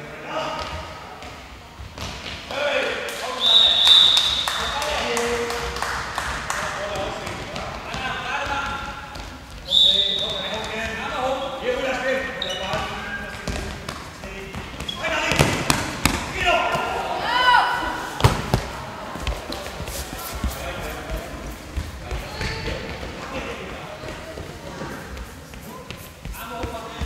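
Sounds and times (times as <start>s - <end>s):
ball bouncing on floor: 12.7s - 16.4s, 18.2s - 19.4s.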